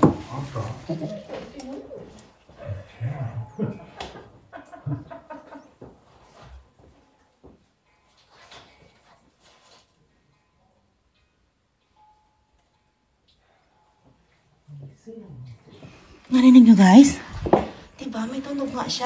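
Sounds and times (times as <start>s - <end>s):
low murmurs: 0.3s - 4.3s.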